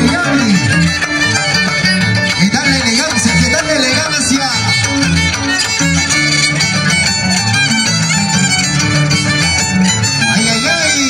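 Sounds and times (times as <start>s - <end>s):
harp bass line: 0.0s - 11.0s
violin melody: 0.0s - 11.0s.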